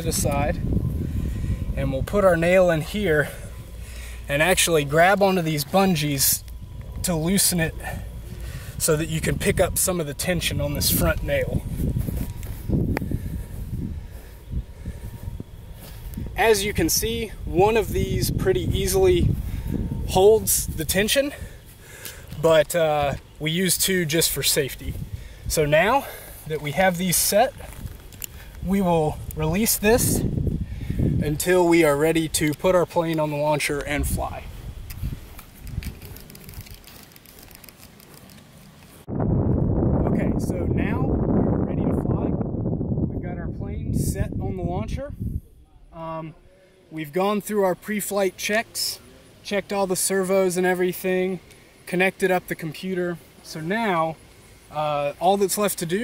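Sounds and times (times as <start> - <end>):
low rumble: 0.0 - 5.0, 39.0 - 45.8
wind rumbling on microphone: 0.0 - 38.2, 38.9 - 46.5.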